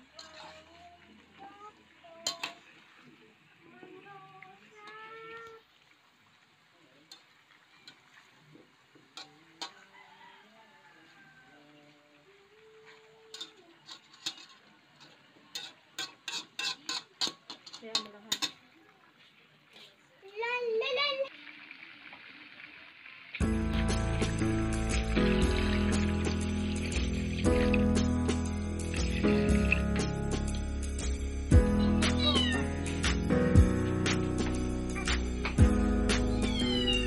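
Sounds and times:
spatula scraping a wok: 0.0s - 1.4s, 13.3s - 18.6s, 23.8s - 31.2s.

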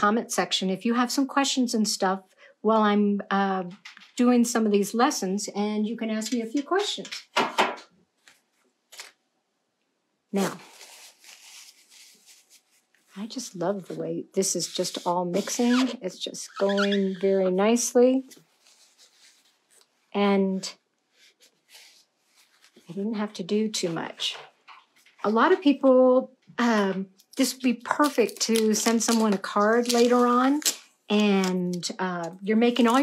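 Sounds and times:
paintbrush strokes on paper: 10.4s - 16.1s, 18.2s - 19.8s.

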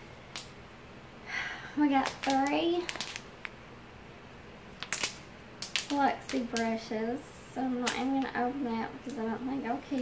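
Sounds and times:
plastic sleeve clicks and crinkles: 2.0s - 3.6s, 4.8s - 6.7s.

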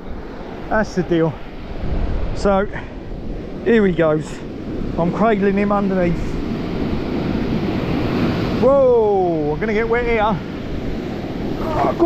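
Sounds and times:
surf washing up sand: 0.0s - 12.0s
wind on microphone: 1.6s - 5.3s.

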